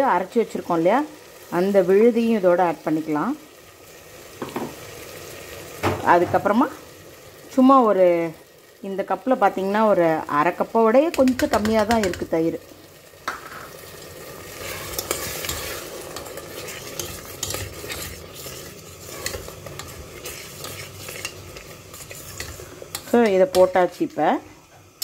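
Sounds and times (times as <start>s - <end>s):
faint sizzle of cooking: 0.0s - 25.0s
spoon scraping and clinking pot: 14.6s - 23.8s.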